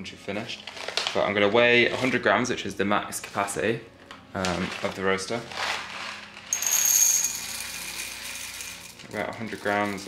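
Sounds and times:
coffee beans pouring into glass jar: 0:04.7 - 0:10.0.

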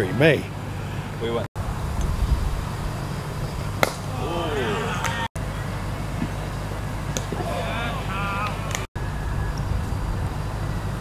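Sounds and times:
wind rumble on microphone: 0:01.6 - 0:03.8, 0:09.0 - 0:11.0
players shouting: 0:03.8 - 0:06.5, 0:07.1 - 0:08.9.

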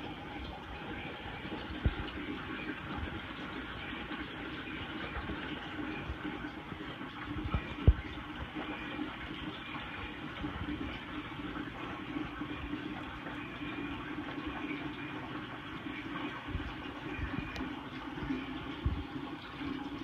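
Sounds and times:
water rushing and gurgling: 0:00.0 - 0:20.0.

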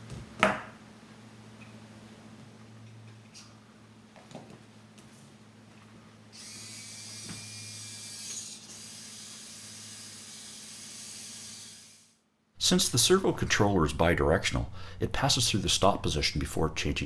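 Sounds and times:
servo motor whirring: 0:06.4 - 0:12.2.

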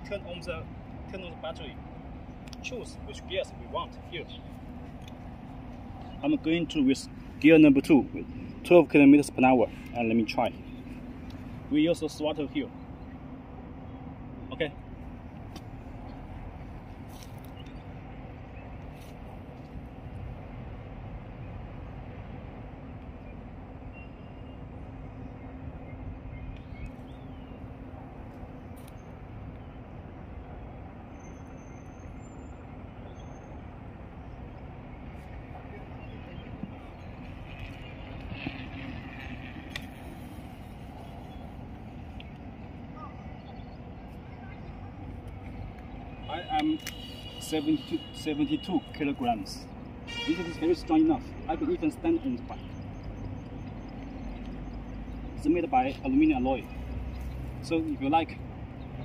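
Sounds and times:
low outdoor rumble: 0:00.0 - 0:59.0.

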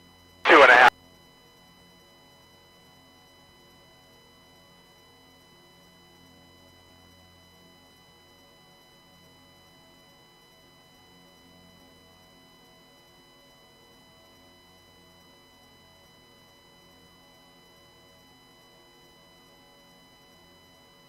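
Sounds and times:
voice over a radio: 0:00.5 - 0:00.9.

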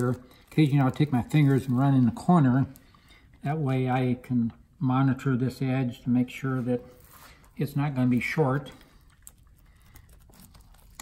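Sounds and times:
gloved hands crinkling cloth: 0:00.0 - 0:03.8, 0:06.4 - 0:11.0.

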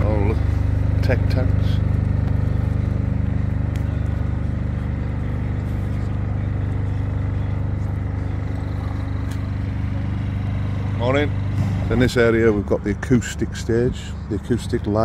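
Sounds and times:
engine droning steadily: 0:00.0 - 0:15.0.

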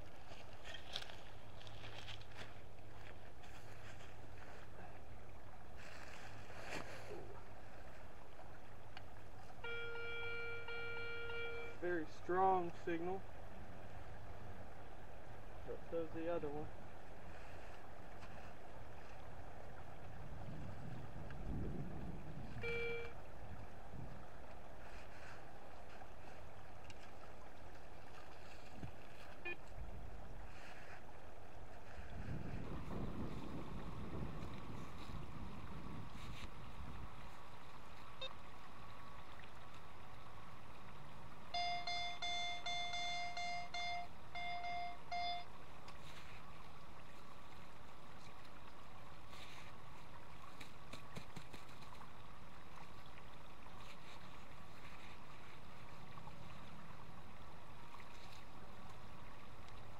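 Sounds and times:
metal detector beeping: 0:09.6 - 0:11.8, 0:22.6 - 0:23.2, 0:41.5 - 0:45.5
wind on microphone: 0:20.0 - 0:24.4, 0:31.8 - 0:37.5.

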